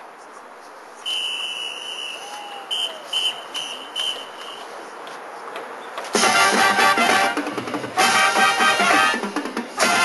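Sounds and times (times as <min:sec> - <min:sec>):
whistle blasts: 0:01.0 - 0:04.7.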